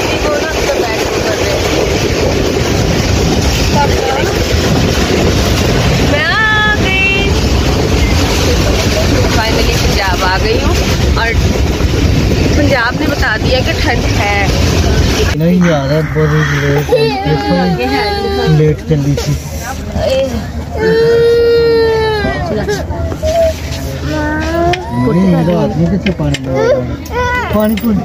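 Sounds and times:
moving train rumble: 0:00.0 - 0:25.0
passengers' voices: 0:00.0 - 0:28.0.

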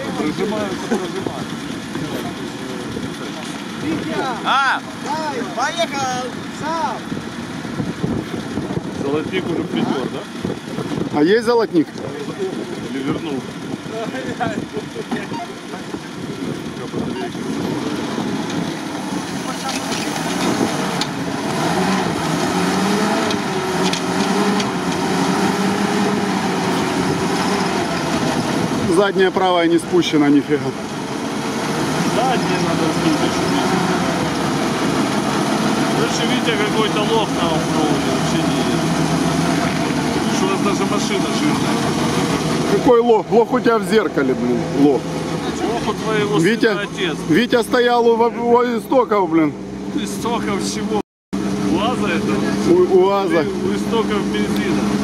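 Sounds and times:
indistinct voices: 0:00.0 - 0:55.0
off-road vehicle engine running: 0:00.0 - 0:55.0.

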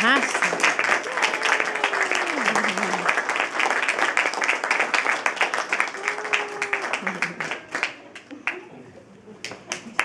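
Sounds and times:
applause and hand claps: 0:00.0 - 0:08.7, 0:09.4 - 0:10.0.

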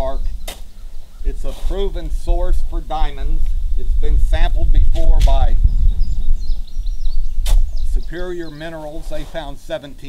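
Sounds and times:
low rumble: 0:00.0 - 0:08.5
faint bird chirps: 0:05.6 - 0:09.0.

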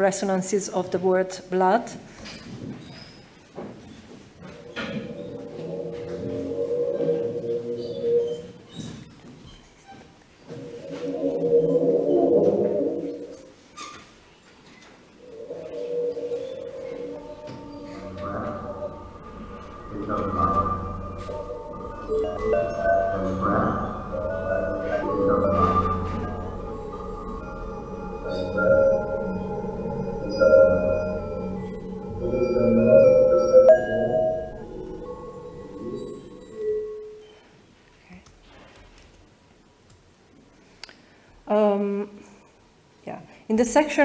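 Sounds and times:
processed cello over loudspeakers: 0:15.3 - 0:37.0.

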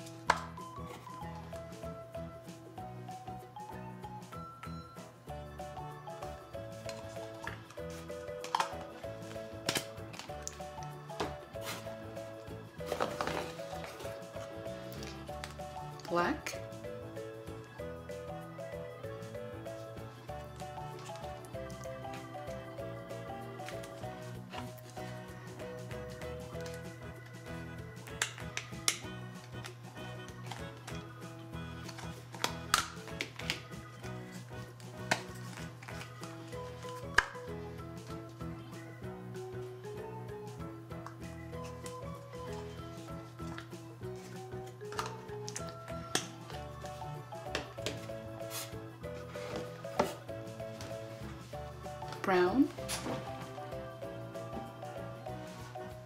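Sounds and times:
background music: 0:00.0 - 0:56.0.

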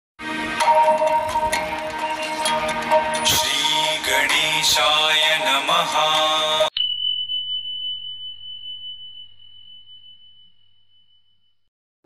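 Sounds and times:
intro music with voice: 0:00.2 - 0:06.7
high ding ringing: 0:06.7 - 0:11.7.

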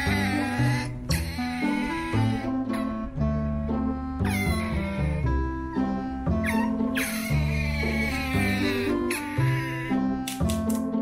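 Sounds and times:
otter squeaking cries: 0:00.0 - 0:03.1, 0:04.2 - 0:10.2
background music: 0:00.0 - 0:11.0.

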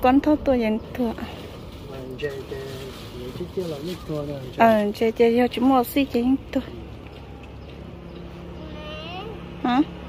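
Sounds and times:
faint high voice: 0:08.6 - 0:09.5.

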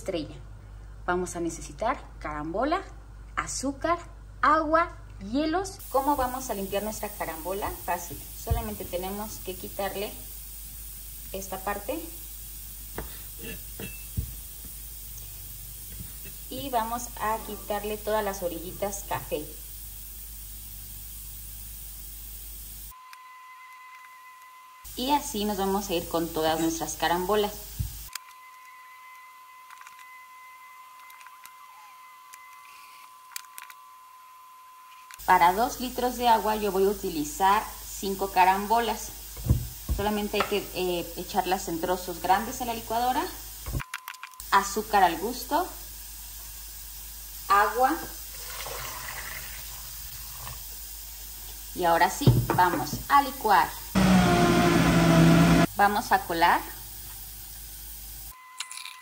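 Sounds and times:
faint steady hiss: 0:05.1 - 0:23.1, 0:24.8 - 0:28.2, 0:34.9 - 0:58.4
juice trickling through strainer: 0:48.3 - 0:50.3.

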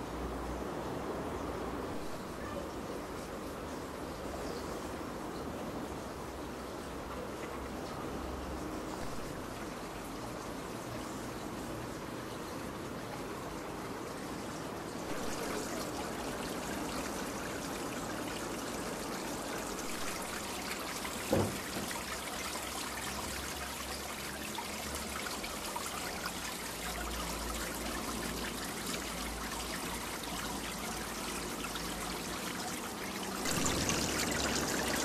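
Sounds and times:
rushing outdoor noise: 0:00.0 - 0:35.0.

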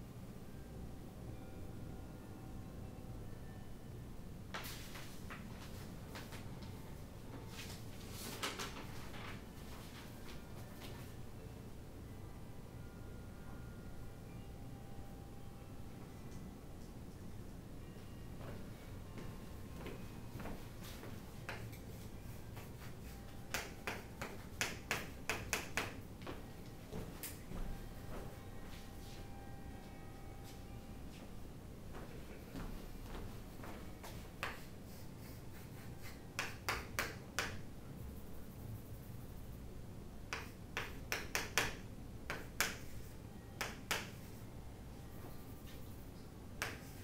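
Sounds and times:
chalk tapping and scraping on chalkboard: 0:21.0 - 0:26.0, 0:34.0 - 0:39.3, 0:40.3 - 0:44.4, 0:46.6 - 0:47.0
chalk strokes on chalkboard: 0:34.1 - 0:36.6.

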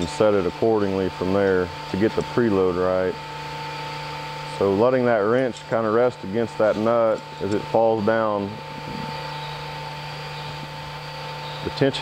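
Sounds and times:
machine hum with hiss: 0:00.0 - 0:12.0.

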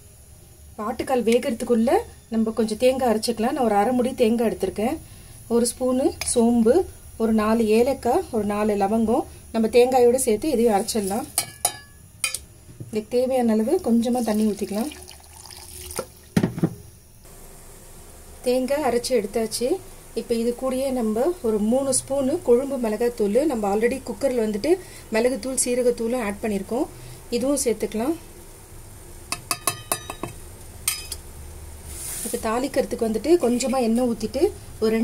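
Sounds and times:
water pouring into metal jar: 0:14.1 - 0:16.3.

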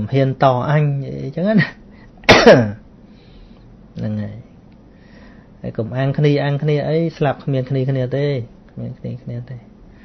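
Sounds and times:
man clearing his throat: 0:02.3 - 0:02.8.

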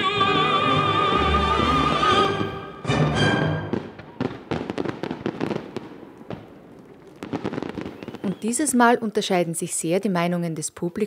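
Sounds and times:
fireworks bangs and crackles: 0:03.5 - 0:09.1.

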